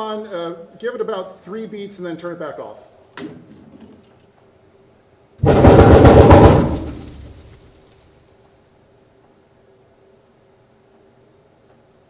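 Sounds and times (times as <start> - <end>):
plastic bag flapping: 5.4 - 8.3.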